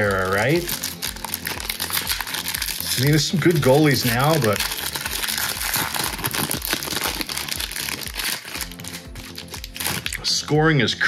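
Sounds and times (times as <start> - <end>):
foil wrapper crinkling: 0.0 - 10.4
background music with steady beat: 0.0 - 11.0.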